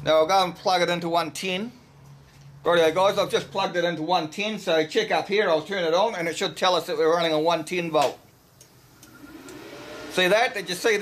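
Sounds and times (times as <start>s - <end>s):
cooling fan spinning up: 8.4s - 11.0s.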